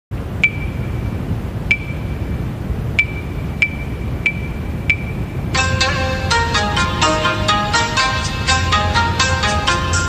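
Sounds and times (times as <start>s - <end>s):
steady low hum: 0.1s - 10.0s
metronome pinging clicks: 0.4s - 5.9s.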